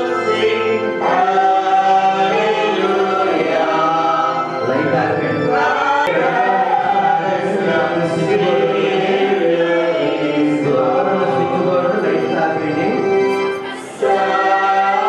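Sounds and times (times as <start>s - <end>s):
congregation singing a hymn: 0.0s - 15.0s.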